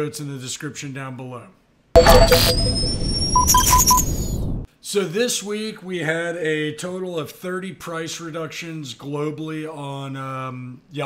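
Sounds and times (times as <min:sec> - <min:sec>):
short beeps: 0:02.0 - 0:04.6.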